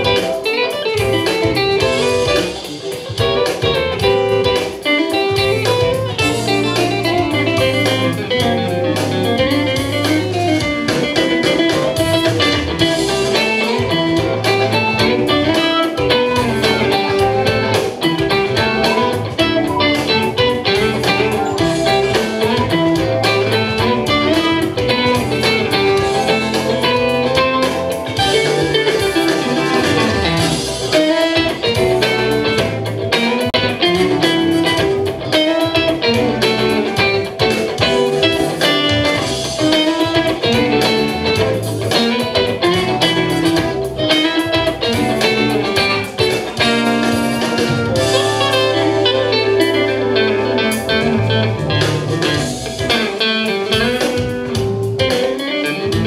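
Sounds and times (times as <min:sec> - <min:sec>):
blues electric guitar: 0:00.0 - 0:56.0.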